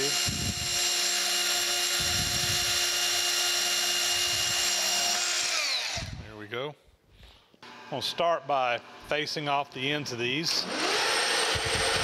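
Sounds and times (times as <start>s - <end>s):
band saw cutting metal rod: 0.0s - 6.2s, 10.6s - 12.0s.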